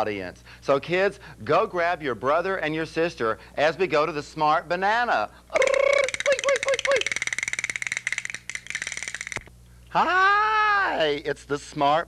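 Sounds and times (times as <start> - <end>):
steady high buzz: 0.0 - 12.0
fast rattle of clicks: 5.6 - 9.5.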